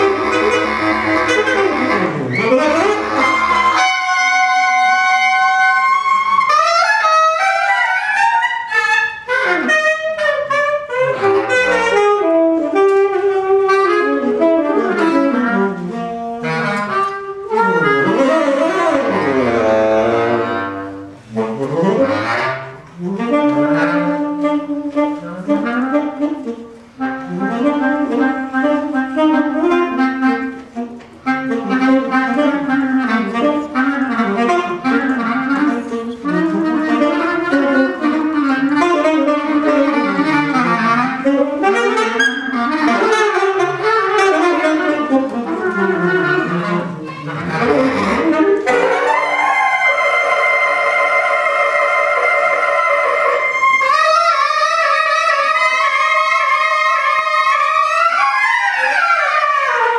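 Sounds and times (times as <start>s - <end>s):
bass clarinet: 0.0s - 59.9s
saxophone: 0.0s - 59.9s.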